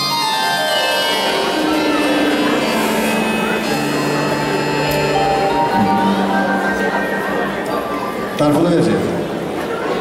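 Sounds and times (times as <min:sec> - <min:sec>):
live band playing slow instrumental: 0:00.0 - 0:10.0.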